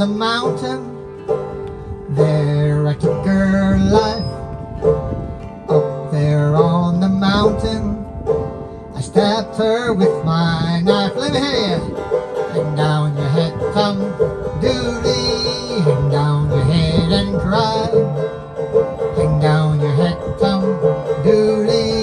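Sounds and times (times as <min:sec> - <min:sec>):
banjo picking folk tune: 0:00.0 - 0:22.0.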